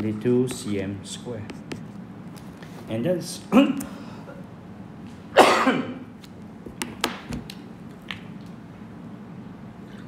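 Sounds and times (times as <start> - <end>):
loud cough: 5.3 - 6.0.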